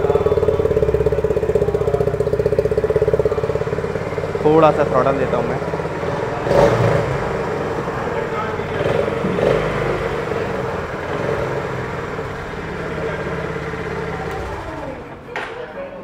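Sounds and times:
motorcycle engine idling: 0.0 - 15.5.

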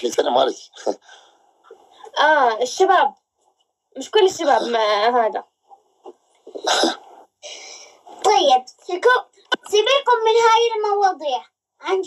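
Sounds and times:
sneeze-like burst of breath: 6.6 - 7.2.

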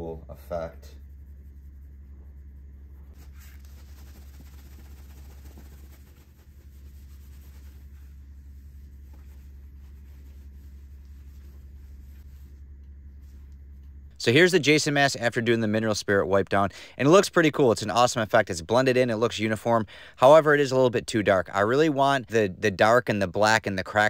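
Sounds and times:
steady low hum: 0.0 - 24.0
towel rubbing on hard plastic: 1.0 - 13.5.

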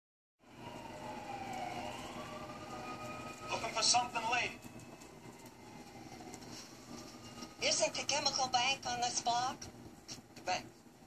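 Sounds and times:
distant siren: 0.4 - 9.1
city street noise: 0.4 - 10.7.

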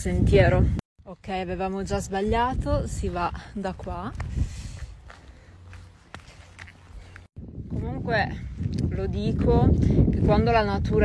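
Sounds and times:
faint footsteps on dirt trail: 1.0 - 10.9.

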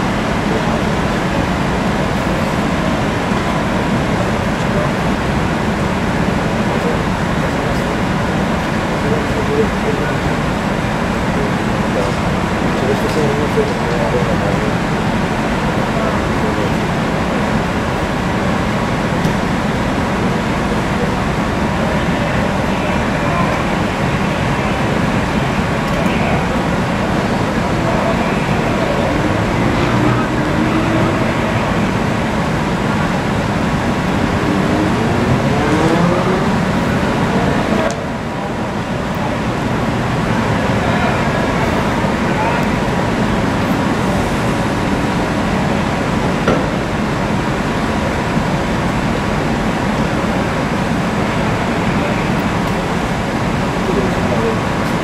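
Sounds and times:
faint voices: 0.0 - 55.0
traffic and vehicle engines: 0.0 - 55.0.

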